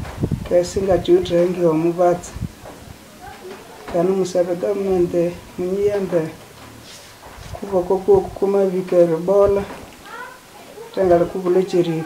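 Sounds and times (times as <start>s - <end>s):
man talking: 0.5s - 2.4s, 3.9s - 9.8s, 11.0s - 12.0s.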